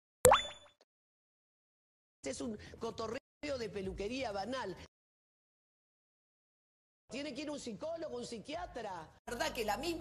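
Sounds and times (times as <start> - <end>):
electronic pop with upward sweep: 0.2 - 0.7.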